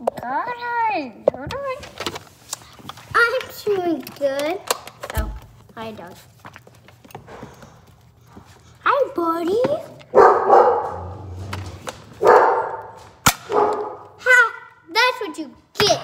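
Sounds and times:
child's voice: 3.1s - 6.2s, 8.8s - 10.0s, 14.2s - 16.0s.

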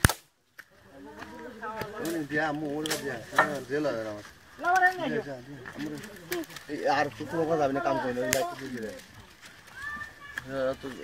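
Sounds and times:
sharp crack: 0.0s - 0.8s, 1.7s - 3.8s, 8.2s - 9.5s
voices talking: 0.6s - 11.0s.

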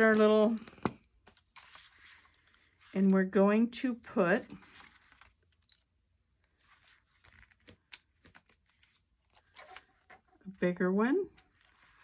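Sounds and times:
light paper rustles: 0.0s - 3.2s, 4.4s - 10.2s, 11.4s - 12.0s.

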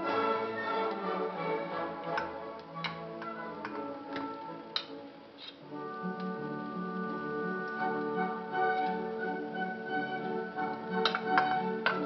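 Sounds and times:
background music: 0.0s - 12.0s
spoon knocking on tin can: 11.0s - 12.0s.

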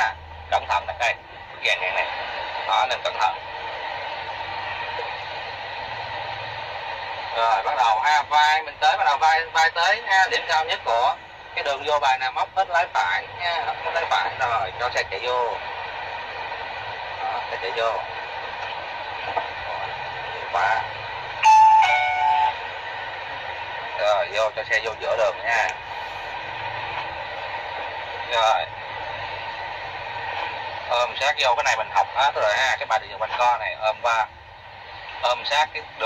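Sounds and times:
truck engine hum: 0.0s - 7.4s, 10.9s - 32.5s
road noise hiss: 0.0s - 36.0s
two-note electronic signal: 21.4s - 22.6s.

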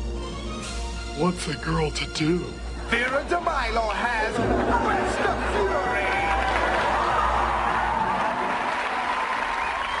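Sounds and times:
audience applauding: 4.3s - 10.0s.

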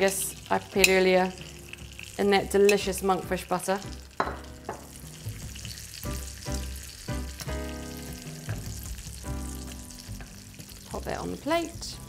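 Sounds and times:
metal tongs turning food: 0.0s - 3.5s
asparagus sizzling in butter: 0.0s - 12.0s
soft background music: 0.0s - 12.0s.

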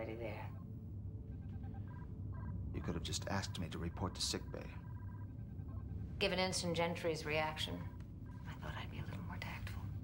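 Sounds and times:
low steady hum: 0.0s - 10.0s
soft whispering voice: 8.5s - 10.0s.

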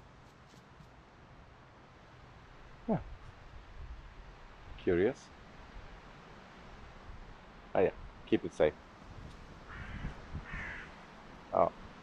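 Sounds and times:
crow cawing: 9.6s - 11.0s.

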